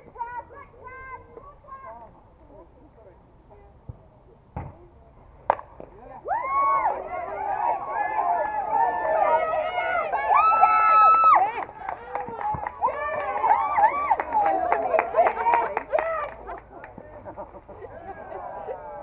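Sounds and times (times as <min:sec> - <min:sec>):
softball bat hitting ball: 0:05.4 - 0:06.0
people shouting: 0:06.3 - 0:11.5.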